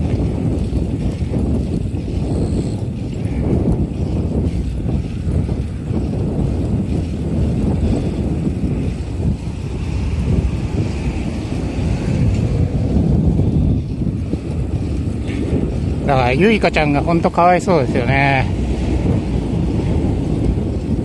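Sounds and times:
wind rushing over microphone: 0:00.0 - 0:21.0.

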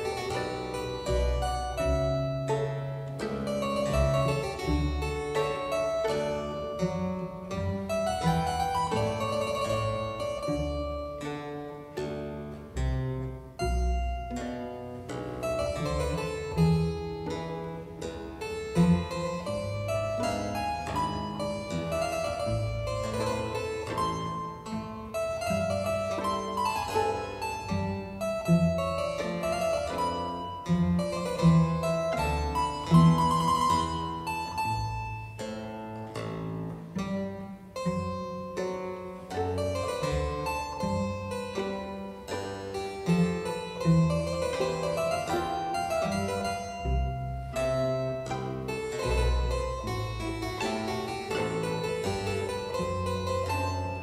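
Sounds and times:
classical keyboard piece: 0:00.0 - 0:54.0.

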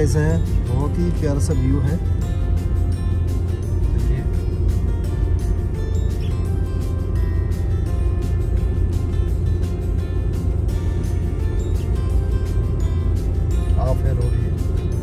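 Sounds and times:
background music with beat: 0:00.0 - 0:15.0
car driving rumble: 0:00.0 - 0:15.0.

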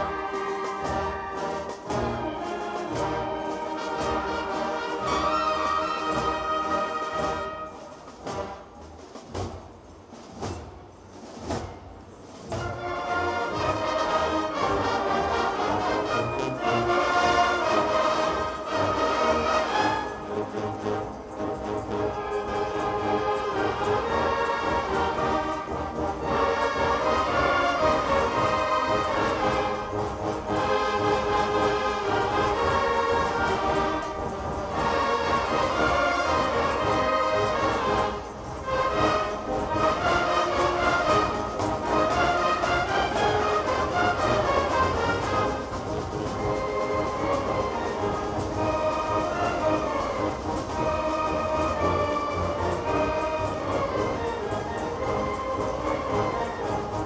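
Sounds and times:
wind band playing: 0:00.0 - 0:57.0.

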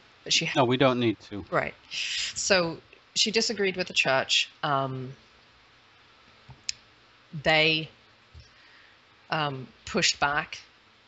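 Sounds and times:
speech: 0:00.3 - 0:05.2, 0:09.3 - 0:10.6.

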